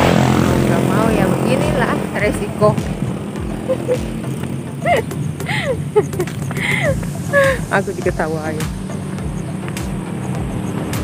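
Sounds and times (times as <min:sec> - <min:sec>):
woman making sliding vocal sounds: 0:04.8 - 0:07.7.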